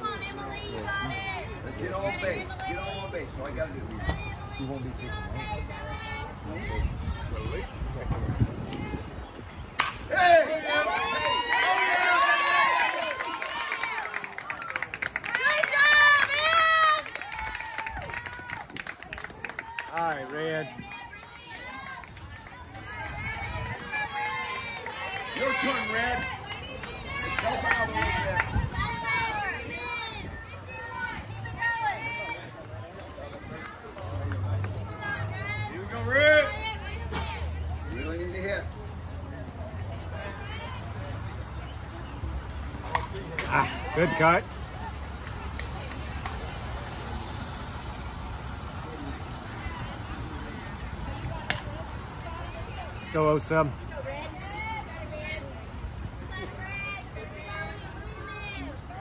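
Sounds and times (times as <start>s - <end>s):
distant voices of players: 0.0s - 59.0s.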